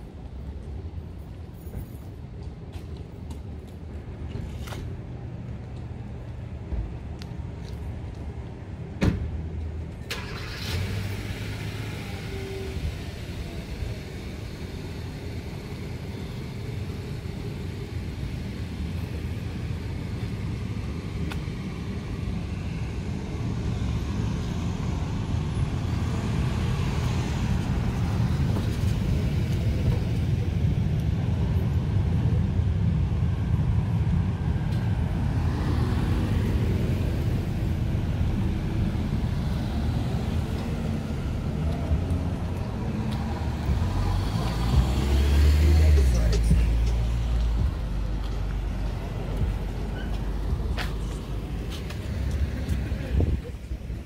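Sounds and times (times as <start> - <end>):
road traffic rumble: 0.0 - 54.0.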